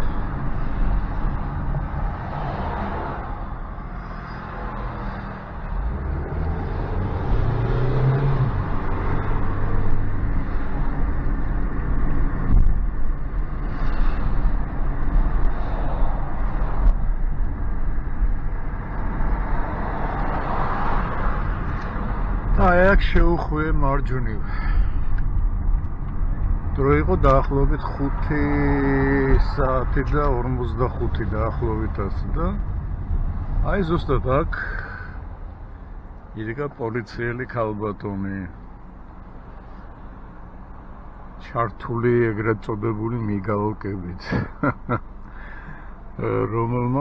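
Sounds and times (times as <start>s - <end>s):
car cabin road and engine noise: 0.0s - 47.0s.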